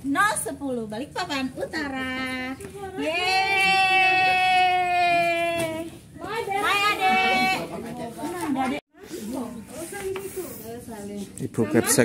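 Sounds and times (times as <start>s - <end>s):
women talking: 0.0s - 11.4s.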